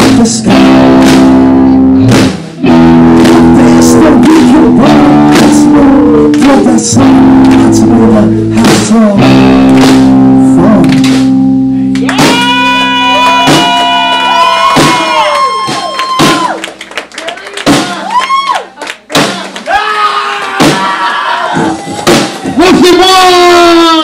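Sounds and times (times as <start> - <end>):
drum and cymbal hits: 0.0 - 5.8, 8.4 - 11.4, 12.2 - 14.0, 14.6 - 16.6, 21.5 - 22.6
guitar and bass chord: 0.0 - 15.4.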